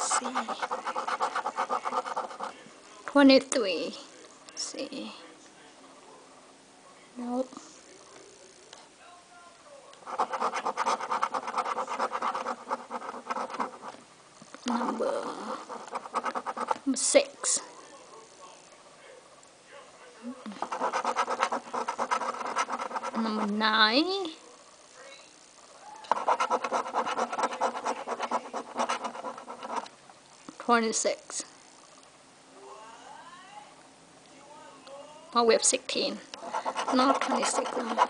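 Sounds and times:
coin scratching lottery ticket: 0:00.0 - 0:02.6, 0:10.0 - 0:14.0, 0:14.8 - 0:16.9, 0:20.6 - 0:23.6, 0:26.1 - 0:29.9, 0:36.4 - 0:38.0.

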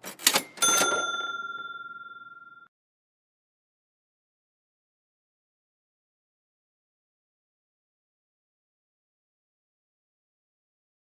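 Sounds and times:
bright bell-like ding: 0:00.4 - 0:02.7.

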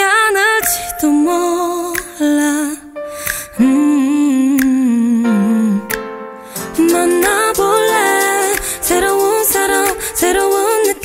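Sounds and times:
backing track: 0:04.5 - 0:11.0
light percussion: 0:05.9 - 0:11.0.

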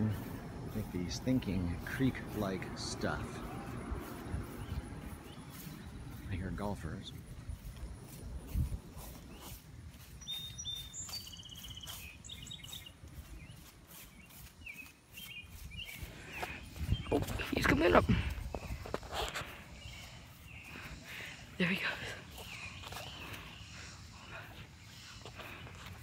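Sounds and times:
footsteps on grass: 0:00.0 - 0:26.0
small birds chirping: 0:00.0 - 0:26.0.

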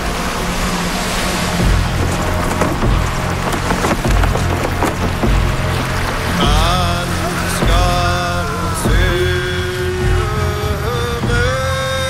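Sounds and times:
cloth banner flapping in wind: 0:00.0 - 0:08.6
deep pulsing rumble: 0:00.0 - 0:12.0.

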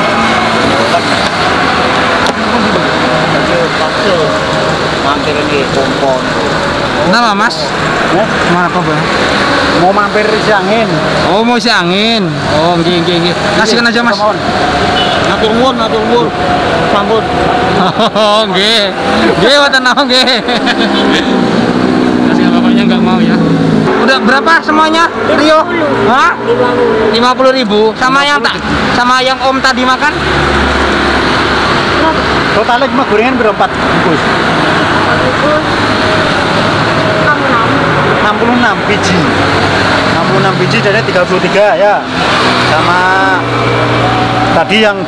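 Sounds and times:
car engine: 0:00.0 - 0:45.0
men talking: 0:00.0 - 0:45.0
road traffic: 0:00.0 - 0:45.0.

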